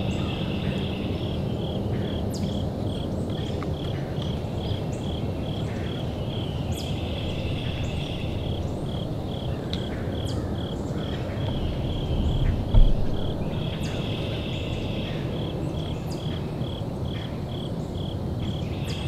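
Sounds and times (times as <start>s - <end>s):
crickets chirping: 0.0s - 19.0s
low background noise: 0.0s - 19.0s
high insect trill: 4.5s - 19.0s
dull thump: 12.4s - 13.7s.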